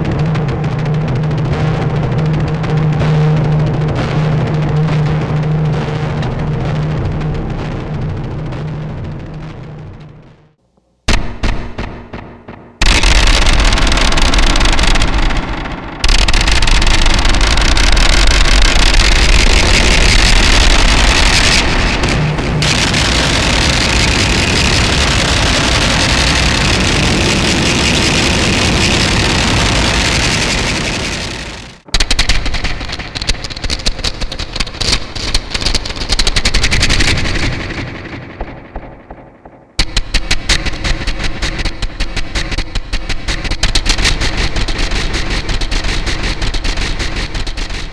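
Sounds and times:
dense wall of noise: 0.0 - 47.9
distorted drumstick hits on metal: 11.1 - 25.0.

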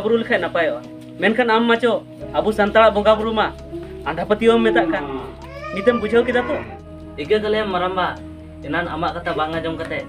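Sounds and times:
background music: 0.0 - 10.0
person speaking: 0.0 - 10.0.

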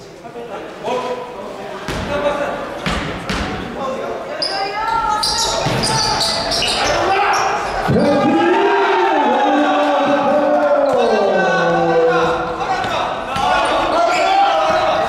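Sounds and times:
sneakers squeaking: 2.7 - 8.2, 13.3 - 15.0
voices calling out: 4.4 - 15.0.

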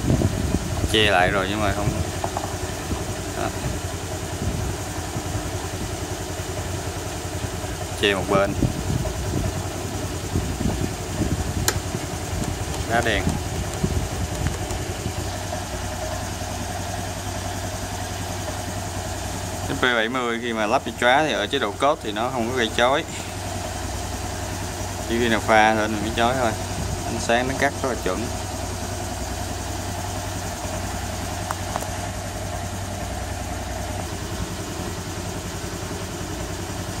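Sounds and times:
scooter engine idling: 0.0 - 37.0.

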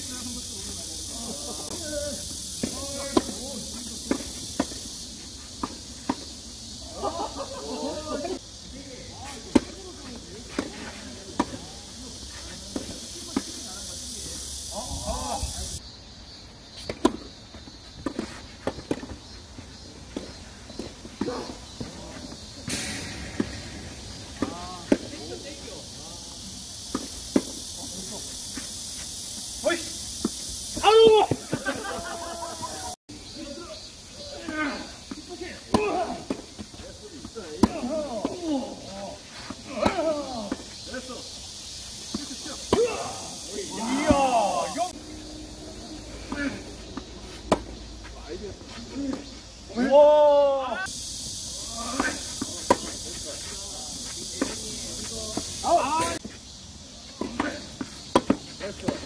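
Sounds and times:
players calling out: 0.0 - 15.8, 18.1 - 59.0
steady high hiss: 0.0 - 59.0
tennis balls struck by rackets: 2.4 - 6.8, 9.1 - 14.0, 16.8 - 17.3, 17.9 - 19.3, 20.0 - 25.7, 26.8 - 27.9, 34.5 - 41.2, 41.9 - 49.9, 51.9 - 56.4, 57.1 - 59.0.

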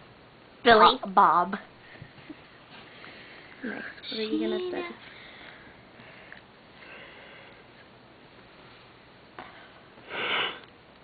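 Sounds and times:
person sniffing: 10.1 - 10.7.

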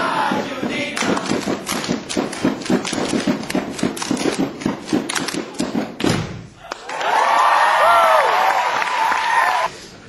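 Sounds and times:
group clapping in unison: 0.1 - 9.7.

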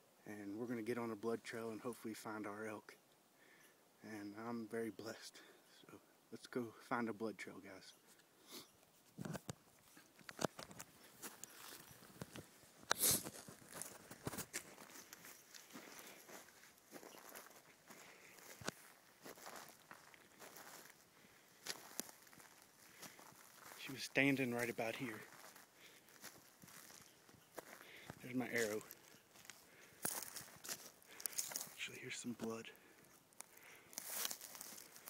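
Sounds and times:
footsteps on dry forest floor: 9.9 - 35.0.

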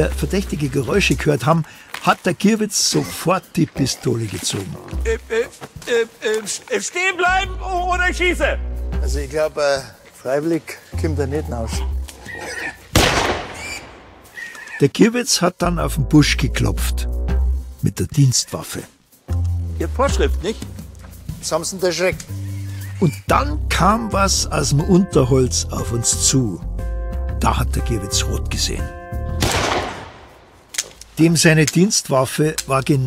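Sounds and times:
pistol shot: 13.0 - 14.3, 29.4 - 30.5.

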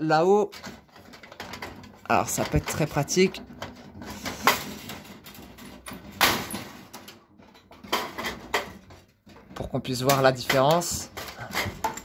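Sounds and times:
plastic scraping in metal fixture: 0.5 - 12.0.

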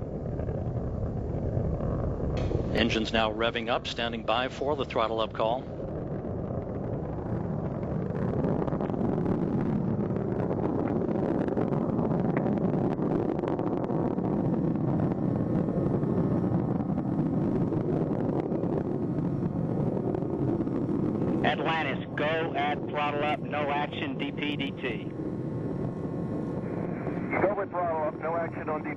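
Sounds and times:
rocket engines roaring: 0.0 - 28.9.

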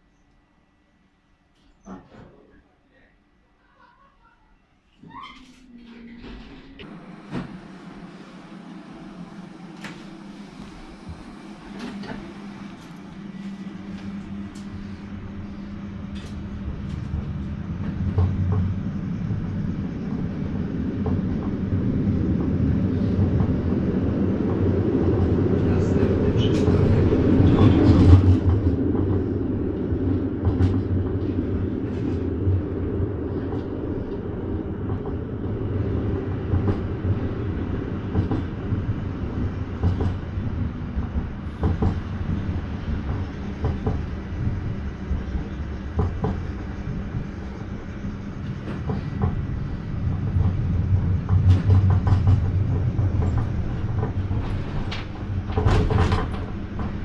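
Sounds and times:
tram wheels rumbling on rails: 5.0 - 57.0.

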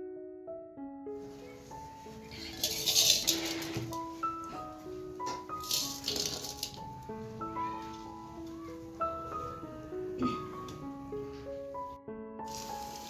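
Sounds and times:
piano background music: 0.0 - 13.0
food sizzling in hot oil: 12.5 - 13.0.

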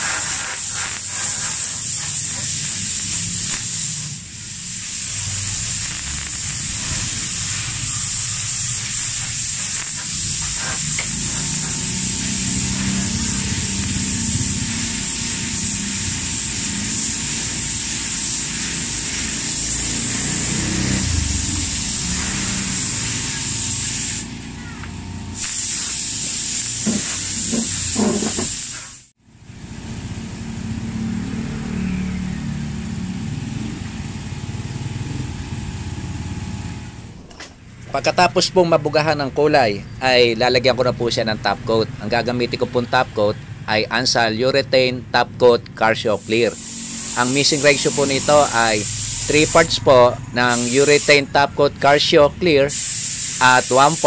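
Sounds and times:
spray gun hissing: 0.0 - 29.2, 46.0 - 54.0.

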